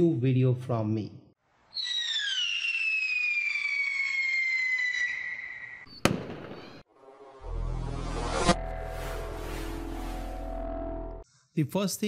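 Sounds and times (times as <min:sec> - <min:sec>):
descending firework whistle: 0:01.7 - 0:06.8
sharp bang: 0:06.0 - 0:06.8.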